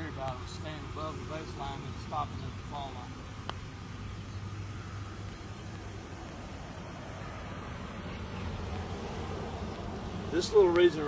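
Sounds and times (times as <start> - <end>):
car passing: 0.0 - 11.0
low outdoor background drone: 0.0 - 11.0.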